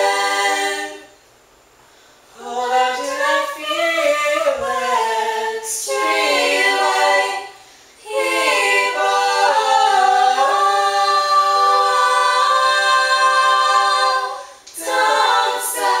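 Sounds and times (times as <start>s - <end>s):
voices singing a cappella: 0.0s - 1.2s, 2.3s - 16.0s.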